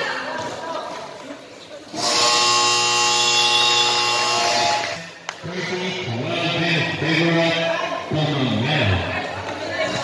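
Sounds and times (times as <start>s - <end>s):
basketball game buzzer blast: 2.0s - 5.1s.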